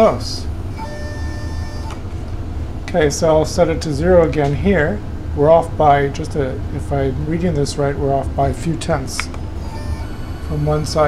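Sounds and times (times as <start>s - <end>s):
axis drive whine: 0.0s - 11.0s
low steady hum: 0.0s - 11.0s.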